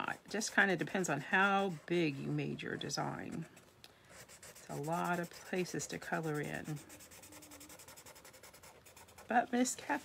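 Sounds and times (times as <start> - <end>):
marker scrubbing on paper: 0.0 - 10.0.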